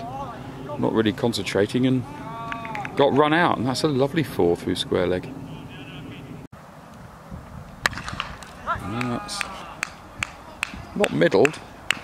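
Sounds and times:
cricket bat striking ball: 7.8 - 8.6
person shouting: 8.6 - 9.9.

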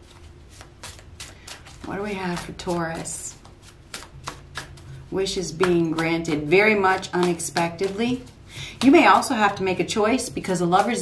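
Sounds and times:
cards being shuffled: 0.0 - 11.0
woman speaking: 1.8 - 3.4, 5.1 - 11.0.

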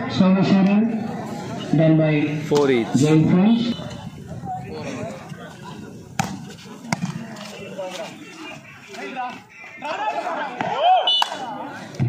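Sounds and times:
spectators chattering: 0.0 - 12.0
crowd shouting: 3.6 - 12.0
hand smacking volleyball: 6.2 - 7.2.

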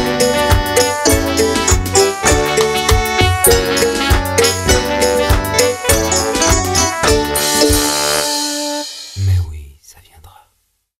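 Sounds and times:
music: 0.0 - 9.6
short low voice sound: 9.2 - 9.8
faint whispering: 9.2 - 10.6.

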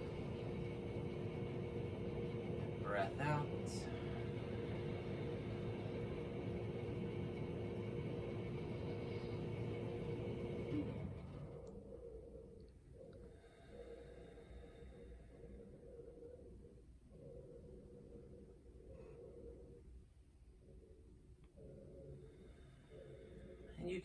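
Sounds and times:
two-tone low hum over rumble: 0.0 - 24.0.

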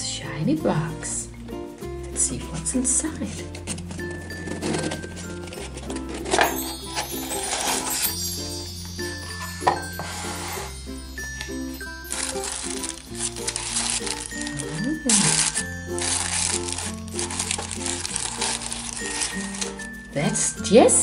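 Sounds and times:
cheerful instrumental music: 0.0 - 21.0
cardboard box and paper rustling: 2.6 - 21.0.

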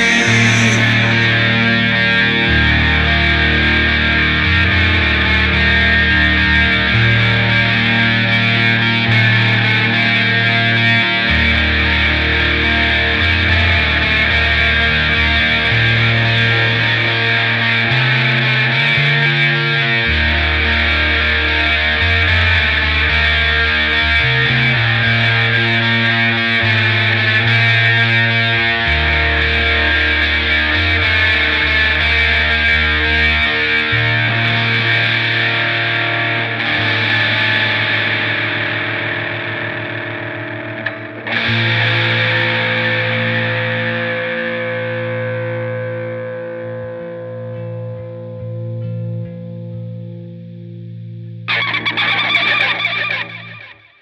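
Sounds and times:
harsh noisy burst: 0.0 - 2.0
bass line: 0.0 - 35.0
distorted electric guitar chords: 0.0 - 54.0.

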